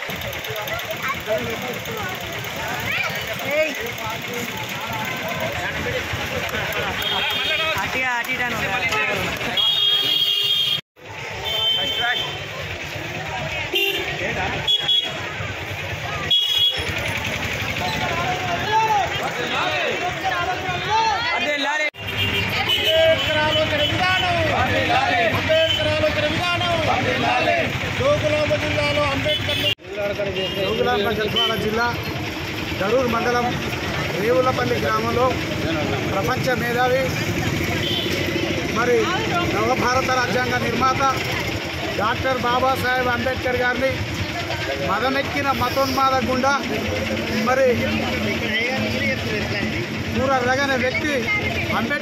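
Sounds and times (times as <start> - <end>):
street traffic rumble: 0.0 - 52.0
men shouting slogans: 22.9 - 28.2.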